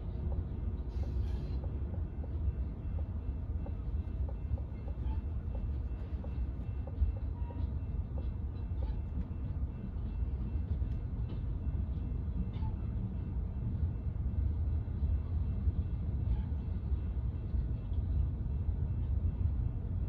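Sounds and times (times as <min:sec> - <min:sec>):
train wheels clicking: 0:00.0 - 0:12.7
freight train rumbling past: 0:00.0 - 0:20.0.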